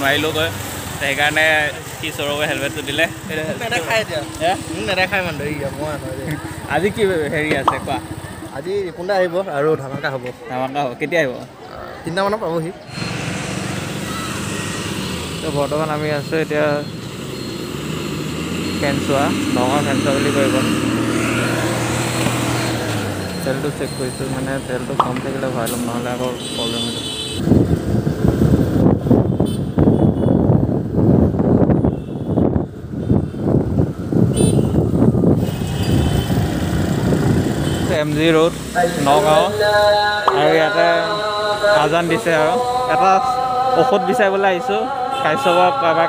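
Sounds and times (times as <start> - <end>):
man speaking: 0.0 - 12.8, 23.4 - 27.3, 38.0 - 39.7, 40.3 - 46.0
road traffic: 0.0 - 46.0
motor scooter engine humming: 2.5 - 9.0, 13.0 - 25.6
wind buffeting microphone: 27.4 - 37.6.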